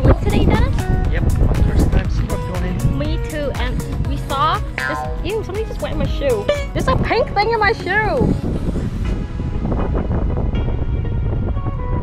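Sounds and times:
background music: 0.0 - 12.0
wind buffeting microphone: 0.0 - 12.0.

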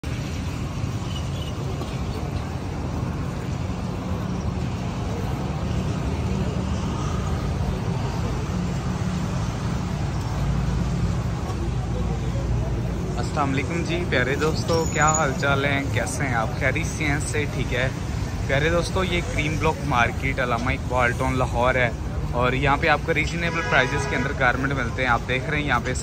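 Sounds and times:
low traffic rumble: 0.0 - 26.0.

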